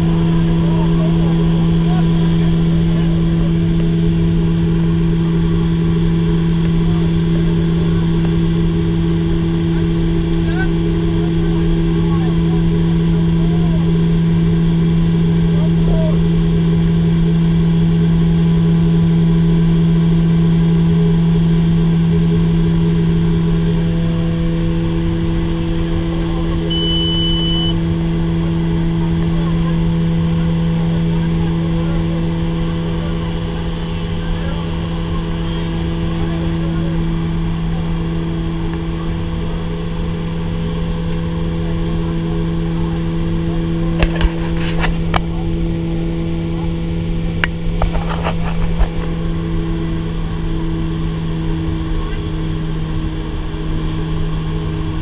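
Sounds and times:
turboprop engines droning: 0:00.0 - 0:55.0
high beep: 0:26.7 - 0:27.8.

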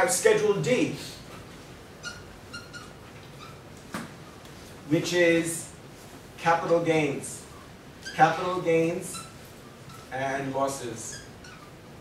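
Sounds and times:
low room noise: 0:00.0 - 0:12.0
marker squeaking on whiteboard: 0:01.3 - 0:04.7, 0:07.6 - 0:12.0.

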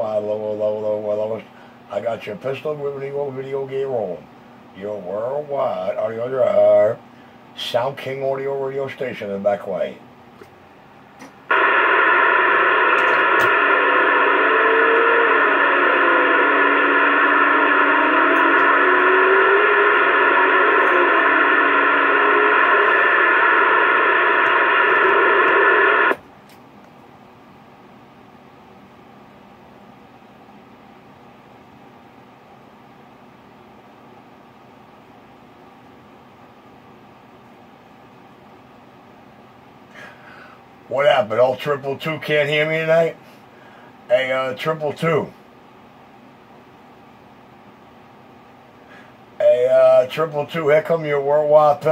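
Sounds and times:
radio static with tones: 0:11.5 - 0:26.2.

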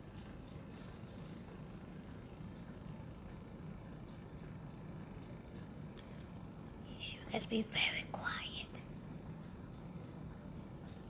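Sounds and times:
low steady hum: 0:00.0 - 0:11.0
woman whispering: 0:06.9 - 0:08.9.

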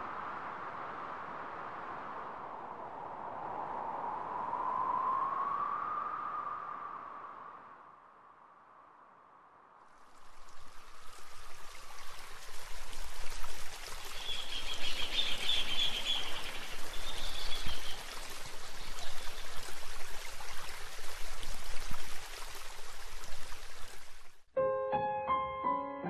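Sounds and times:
stream water running: 0:09.9 - 0:24.5.

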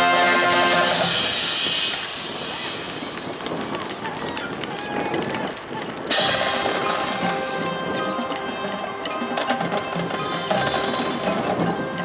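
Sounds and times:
marching band chords: 0:00.0 - 0:02.5, 0:06.1 - 0:12.0
voices from stands: 0:00.7 - 0:12.0.

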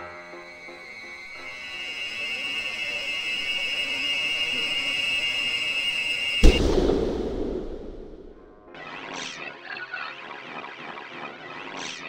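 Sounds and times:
shrill high tone: 0:00.7 - 0:06.4
loud crash: 0:06.4 - 0:08.7
low rumble: 0:06.4 - 0:08.7.

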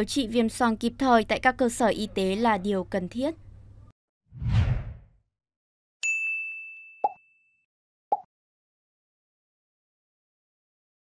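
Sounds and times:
bright bell-like ding: 0:06.0 - 0:07.6.

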